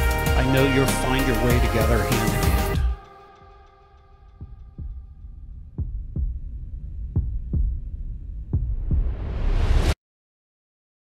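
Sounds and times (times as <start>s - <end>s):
heartbeat thumps: 4.4s - 9.4s
low rumble: 4.4s - 10.0s.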